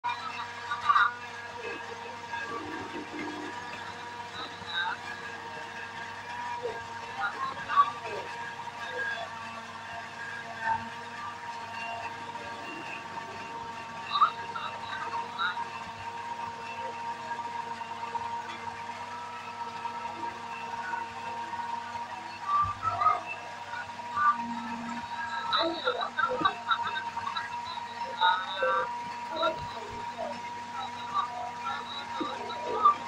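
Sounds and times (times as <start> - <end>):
faint voices: 0.0 - 33.0
steady electronic hum: 0.1 - 33.0.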